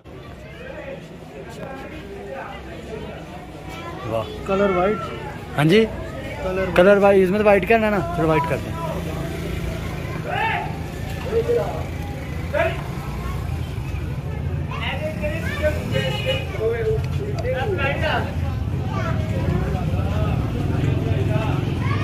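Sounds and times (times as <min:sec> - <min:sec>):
voices talking: 0:00.0 - 0:22.0.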